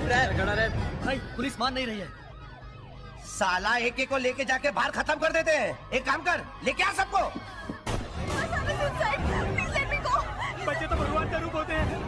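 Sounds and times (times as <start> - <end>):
emergency vehicle siren wailing: 0.0 - 12.0.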